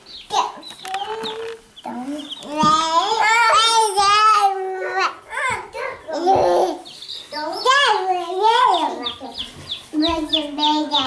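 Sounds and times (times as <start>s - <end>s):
baby chicks peeping: 0.0s - 11.0s.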